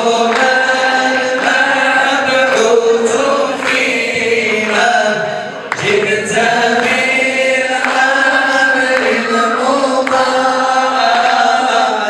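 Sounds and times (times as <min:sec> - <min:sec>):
voices chanting together: 0:00.0 - 0:12.0.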